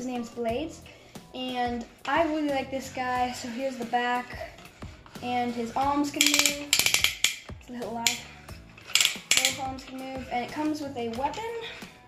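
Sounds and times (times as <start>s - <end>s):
plastic toy joints clicking: 6.1s - 10.1s.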